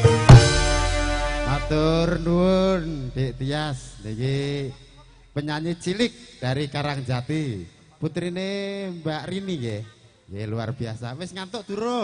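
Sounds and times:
band holding a note: 0.0 - 6.3
man calling out over pa: 1.4 - 5.7.

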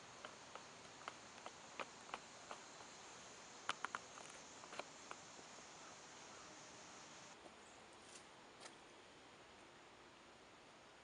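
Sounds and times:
faint background hiss: 0.0 - 11.0
small clicks: 3.6 - 5.3.

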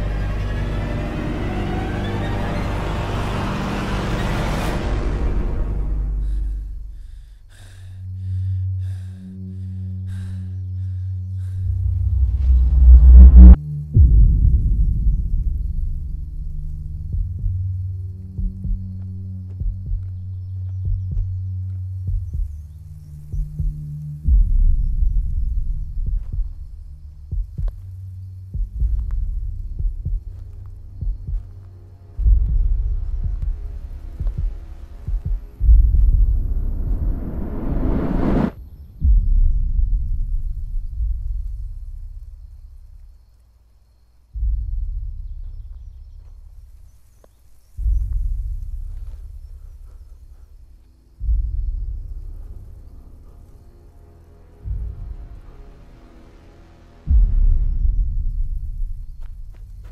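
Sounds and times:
deep bass pulses: 0.0 - 43.2, 44.2 - 56.0, 57.0 - 59.9
rising swell: 11.6 - 14.4, 33.9 - 38.6.

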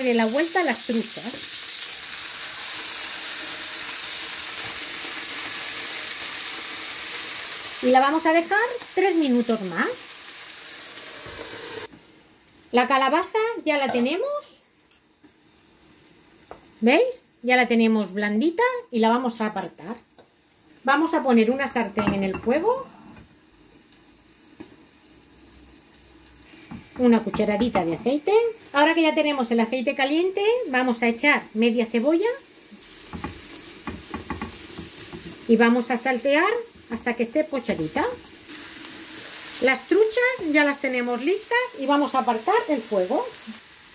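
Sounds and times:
fish sizzling in a frying pan: 0.0 - 12.7, 14.8 - 17.4, 22.9 - 29.4, 30.7 - 43.9.

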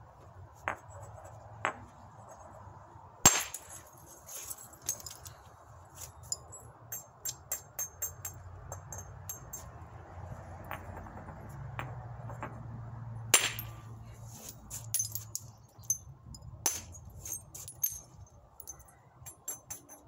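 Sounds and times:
hammerstone striking stone: 13.4 - 13.8.

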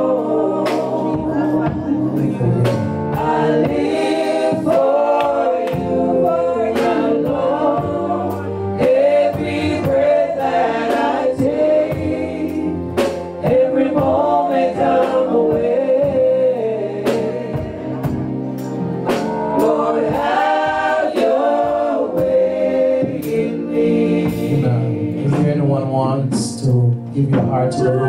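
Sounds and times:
gospel voices singing together: 0.0 - 28.0
steady beat: 0.0 - 28.0.

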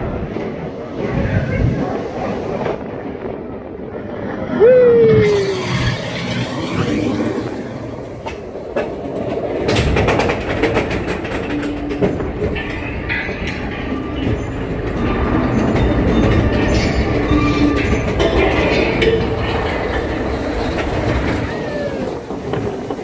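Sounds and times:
roller coaster rumbling on track: 0.0 - 23.0
short falling squeal: 4.6 - 7.5.

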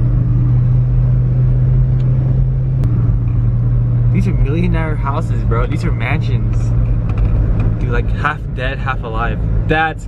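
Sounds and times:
car engine and road drone: 0.0 - 10.0.

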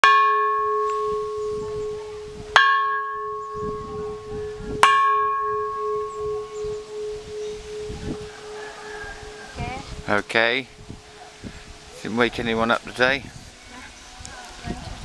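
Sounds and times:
temple bell struck with wooden pole: 0.0 - 8.7
deep bell hum: 0.0 - 9.4.

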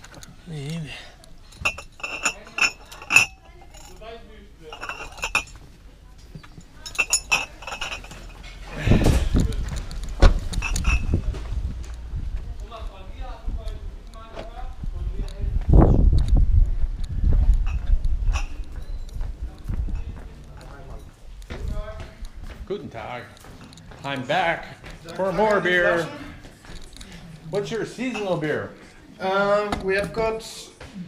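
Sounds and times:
glass bottles clinking: 1.5 - 5.7, 6.4 - 11.4, 17.6 - 19.2, 27.6 - 28.7
low microphone rumble: 8.4 - 22.7
footsteps on hard street: 9.2 - 27.3.

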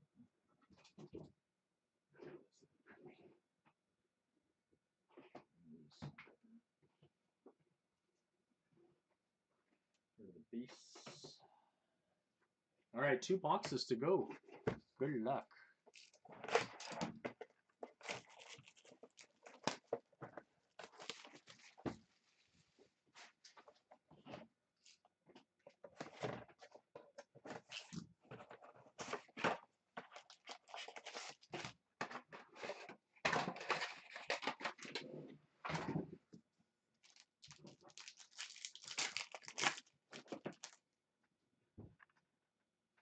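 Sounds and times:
card packs rustling and scraping: 15.9 - 22.6, 25.9 - 35.0, 37.0 - 40.8
plastic wrap crinkling: 17.9 - 20.0, 20.8 - 21.8, 30.1 - 31.7, 37.0 - 40.8
shrink wrap tearing rustle: 18.0 - 19.9, 20.8 - 21.8, 30.1 - 31.7, 37.0 - 40.8.

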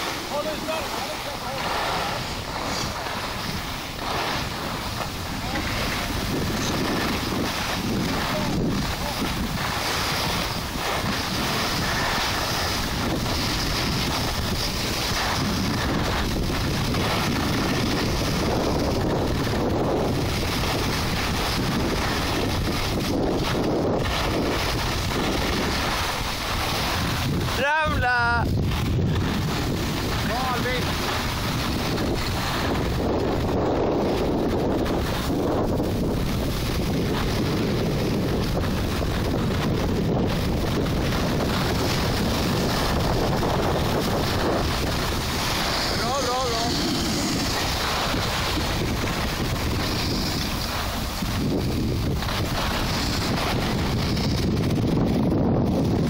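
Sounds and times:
skis hissing over snow: 0.0 - 56.0
wind rushing on microphone: 0.0 - 56.0.

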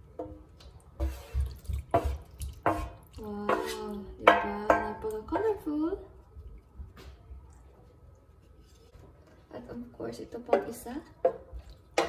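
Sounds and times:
scraping steel pan: 1.0 - 5.0.

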